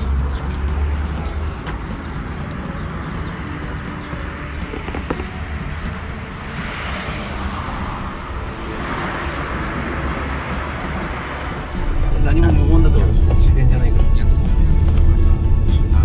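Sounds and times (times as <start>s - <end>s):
road traffic rumble: 0.0s - 16.0s
vehicles passing: 0.0s - 16.0s.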